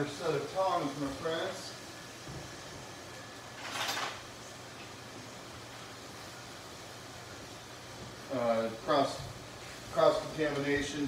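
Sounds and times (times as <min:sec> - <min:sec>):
range hood fan running: 0:00.0 - 0:11.0
scallops searing in pan: 0:00.0 - 0:11.0.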